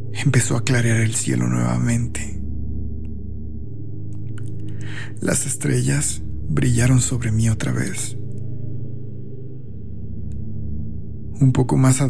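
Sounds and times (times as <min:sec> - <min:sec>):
dark ambient drone music: 0:00.0 - 0:12.0.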